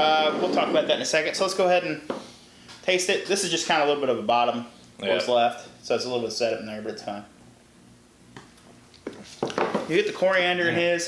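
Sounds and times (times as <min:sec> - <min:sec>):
man speaking: 0:02.9 - 0:07.3, 0:09.9 - 0:11.0.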